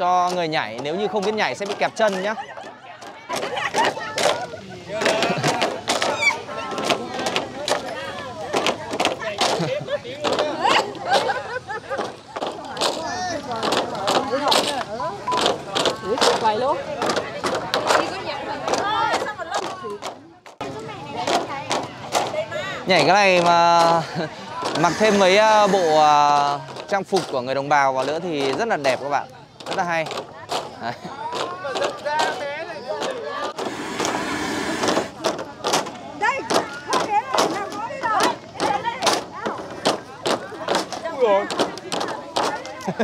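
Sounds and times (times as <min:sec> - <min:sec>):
bamboo poles clacking together: 0:00.0 - 0:20.6, 0:21.2 - 0:34.2, 0:34.8 - 0:43.0
chatter of onlookers: 0:00.0 - 0:43.0
people talking: 0:00.0 - 0:43.0.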